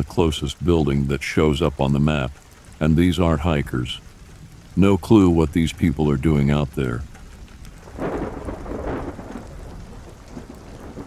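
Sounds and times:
steady rain: 0.0 - 11.0
thunder roll: 7.8 - 11.0.

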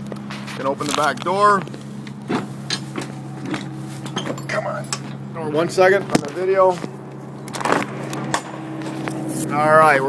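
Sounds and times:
refrigeration unit engine humming: 0.0 - 10.0
rattling scrape of door: 2.3 - 5.3.

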